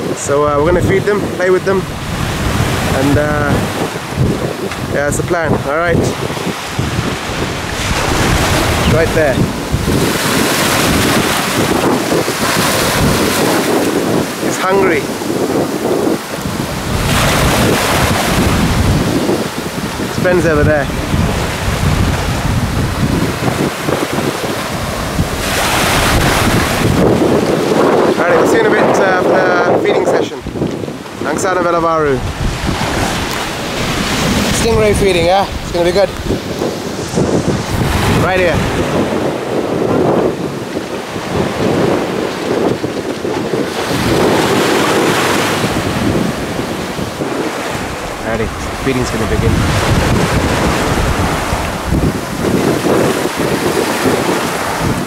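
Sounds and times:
small waves washing on sand: 0:00.0 - 0:55.0
wind buffeting microphone: 0:00.0 - 0:55.0.

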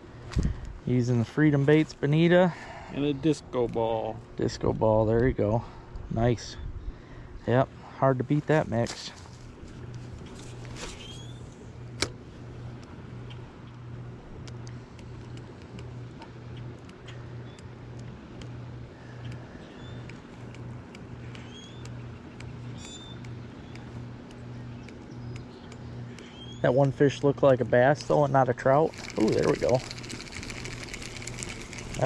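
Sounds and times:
pulsing low hum: 0:00.0 - 0:32.0
bird chirps: 0:10.9 - 0:11.5, 0:19.6 - 0:20.1, 0:21.4 - 0:26.7.

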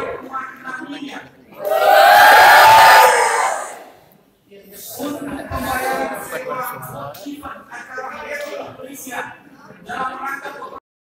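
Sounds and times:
crowd shouting together: 0:01.6 - 0:04.0.

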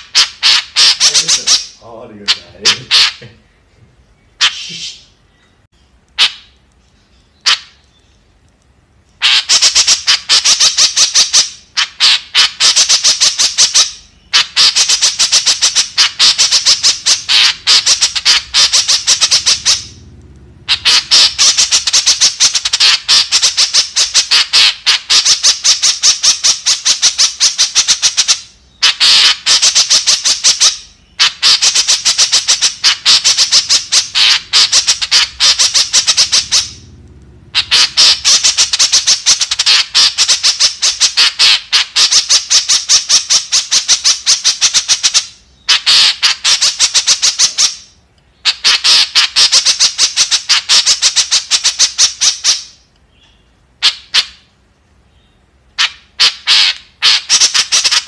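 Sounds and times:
bird harsh chattering calls: 0:00.0 - 0:08.3, 0:09.2 - 0:58.0.

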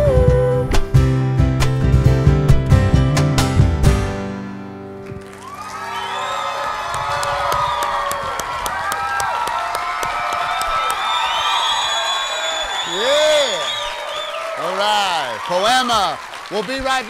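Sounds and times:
audience clapping: 0:05.0 - 0:17.0
audience cheering and whooping: 0:05.2 - 0:17.0.

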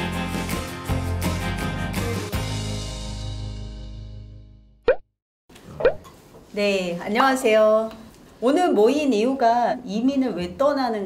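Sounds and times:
rising bloop pop sounds: 0:05.8 - 0:06.0.

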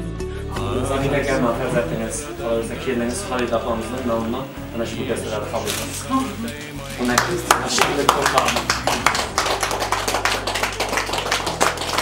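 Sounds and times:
hand clapping: 0:07.0 - 0:12.0.

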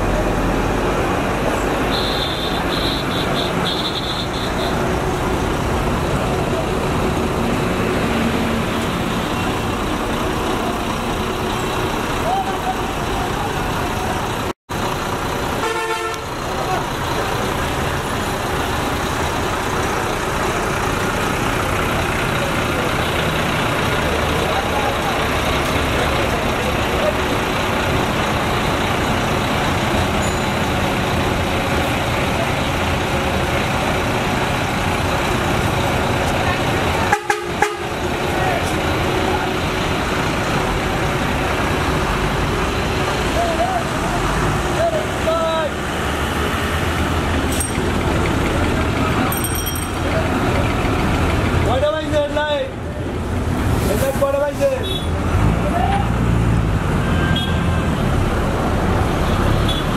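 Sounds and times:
roadside traffic: 0:00.0 - 0:59.9
vehicle horn honking: 0:01.9 - 0:04.8, 0:15.6 - 0:16.3, 0:37.1 - 0:37.9, 0:57.2 - 0:57.7.

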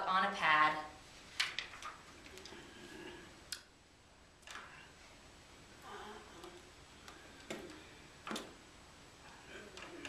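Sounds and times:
faint room noise: 0:00.0 - 0:10.0.

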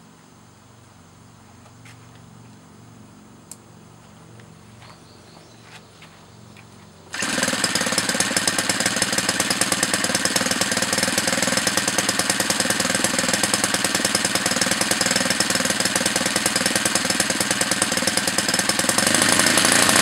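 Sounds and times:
model aircraft engine running: 0:07.1 - 0:20.0.

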